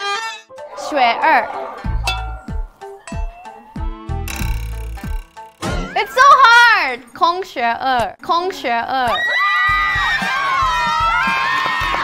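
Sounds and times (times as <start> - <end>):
women screaming and cheering: 9.1 - 12.0.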